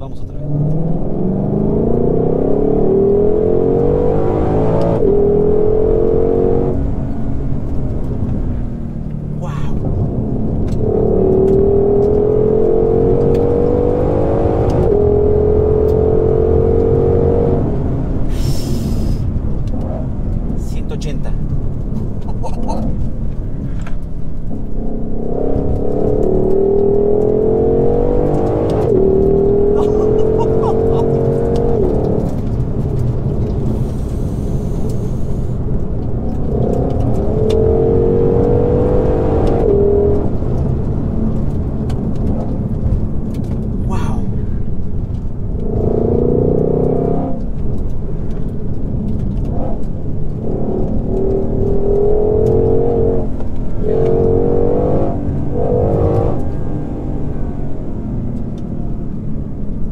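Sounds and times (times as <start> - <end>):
car engine accelerating: 0.0 - 59.9
low road rumble: 0.0 - 59.9.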